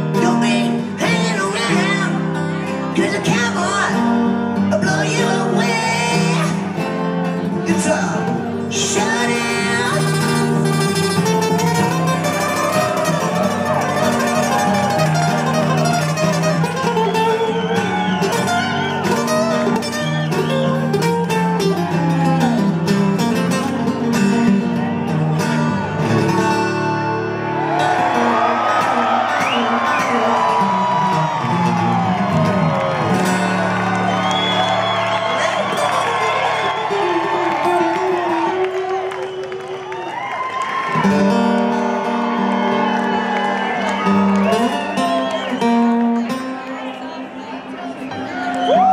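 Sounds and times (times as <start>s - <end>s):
band playing acoustic guitars: 0.0s - 48.9s.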